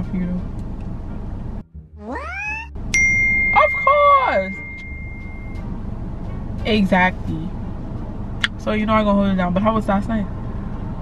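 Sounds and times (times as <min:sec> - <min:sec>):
steady high tone: 0:01.6 - 0:05.7
shrill cartoon voice squealing: 0:02.0 - 0:02.7.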